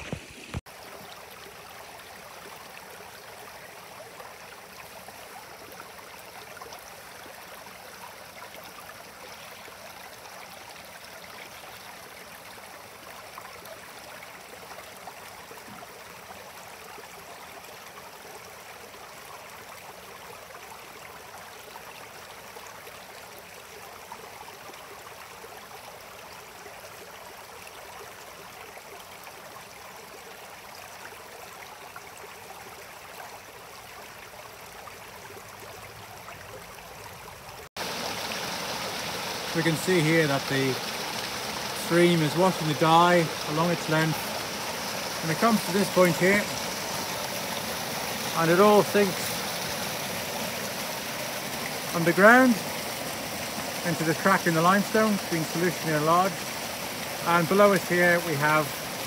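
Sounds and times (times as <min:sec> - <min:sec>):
stream running over rocks: 0:00.0 - 0:59.0.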